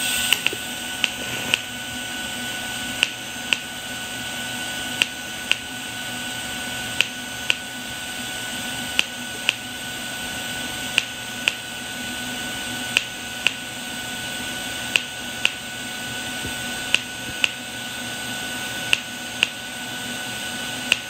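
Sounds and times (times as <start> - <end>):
welding arc hissing: 0.0 - 19.6.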